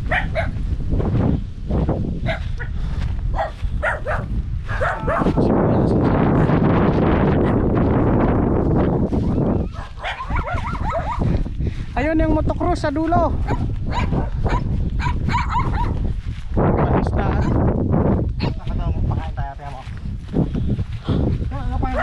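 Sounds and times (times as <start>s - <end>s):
dog barking: 0.0s - 0.6s, 2.2s - 5.4s, 7.4s - 7.7s, 9.6s - 11.3s, 13.4s - 16.0s, 17.4s - 17.7s, 18.4s - 18.7s
steady rushing noise: 0.0s - 22.0s.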